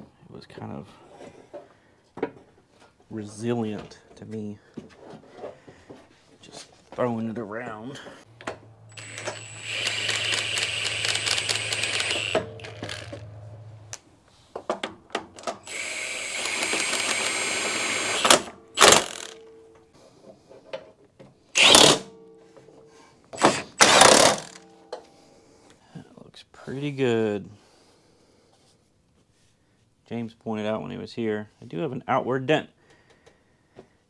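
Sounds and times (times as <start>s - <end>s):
cordless power driver whining: 8.9s - 13.4s, 15.4s - 19.4s, 21.6s - 22.1s, 23.4s - 24.6s.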